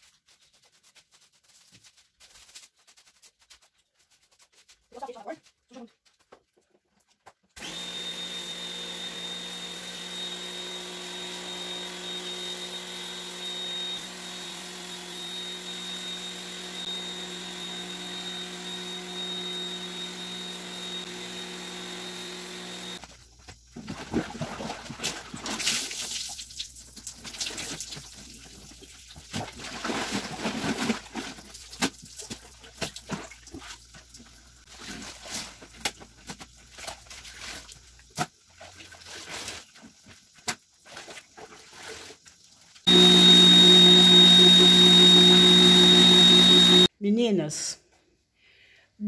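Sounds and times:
pressure washer whining: 7.6s - 23.0s, 42.9s - 46.9s.

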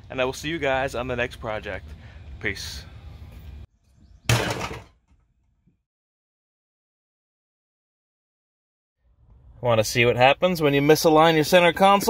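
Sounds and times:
metal object clunking into trash can: 4.3s - 5.0s.

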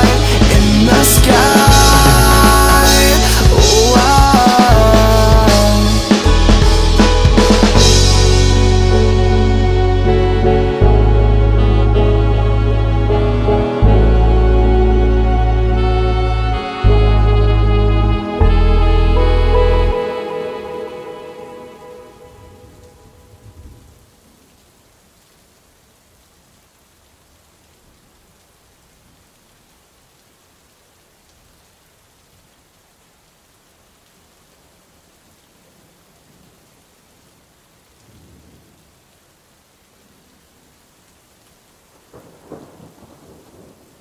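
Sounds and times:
song: 0.0s - 23.5s
faint steady rain: 0.0s - 44.0s
low rolls of thunder: 22.3s - 24.5s, 38.0s - 38.9s, 42.0s - 44.0s.

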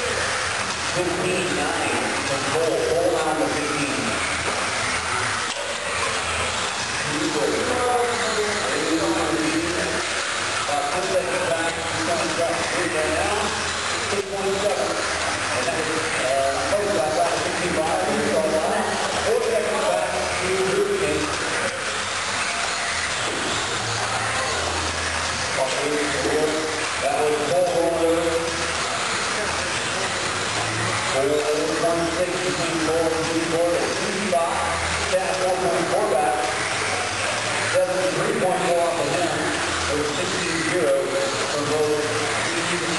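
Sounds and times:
electric model cars whirring: 0.0s - 42.9s
indistinct talking: 0.0s - 42.9s.

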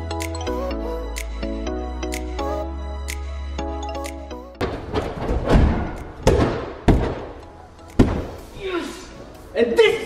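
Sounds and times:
background music: 0.0s - 10.0s
body thudding on airtrack: 4.6s - 7.4s.

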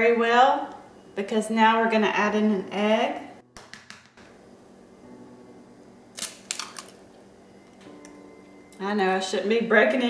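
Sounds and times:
egg cracking on glass bowl: 6.2s - 7.0s.

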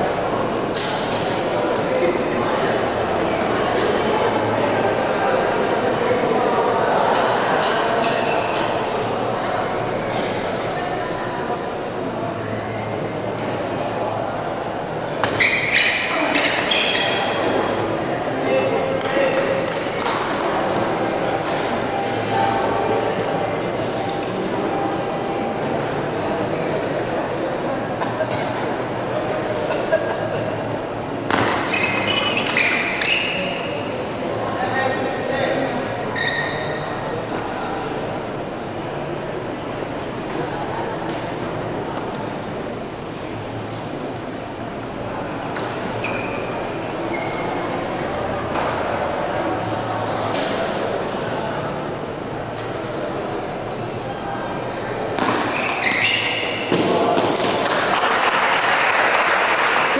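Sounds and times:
murmur of crowd voices: 0.0s - 59.9s.

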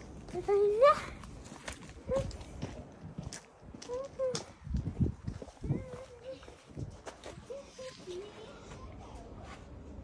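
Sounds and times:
footsteps on gravel and concrete: 0.0s - 10.0s.

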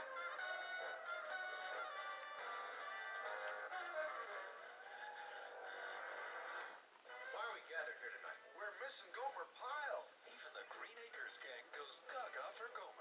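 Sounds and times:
television music with held notes: 0.0s - 13.0s
voice talking on television: 7.1s - 13.0s.

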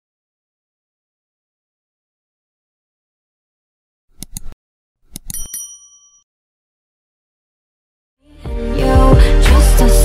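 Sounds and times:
mouse clicks: 4.2s - 5.5s
bright bell ding: 5.3s - 6.2s.

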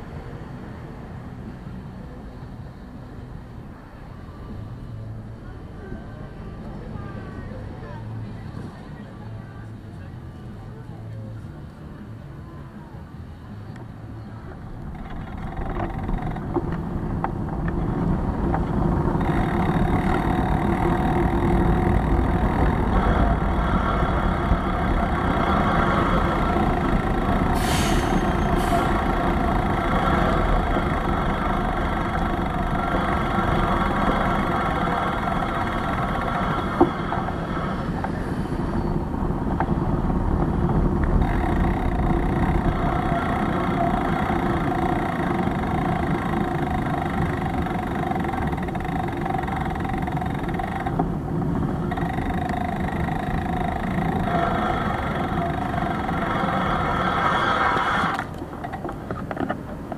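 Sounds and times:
city street noise: 0.0s - 59.9s.

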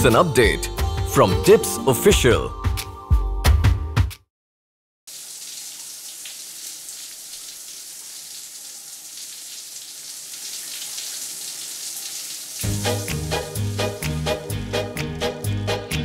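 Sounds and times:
shower water spraying: 5.1s - 14.2s.

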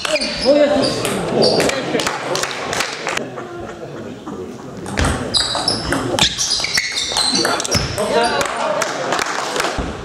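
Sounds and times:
table tennis ball pinging: 4.8s - 8.2s.

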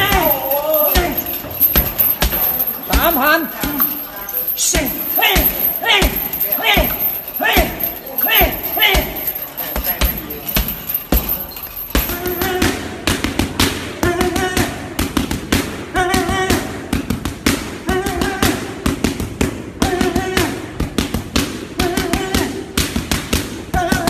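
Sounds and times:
boxing gloves smacking mitts: 0.0s - 24.0s.

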